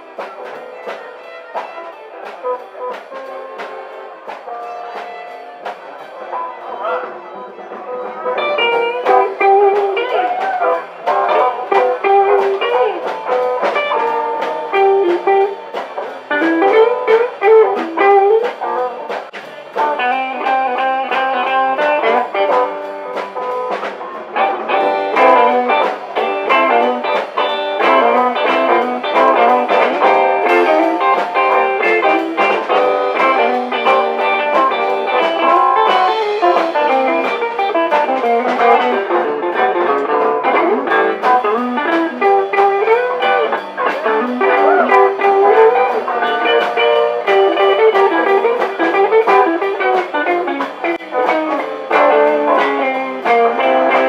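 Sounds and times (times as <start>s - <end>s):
live band playing blues: 0.0s - 54.0s.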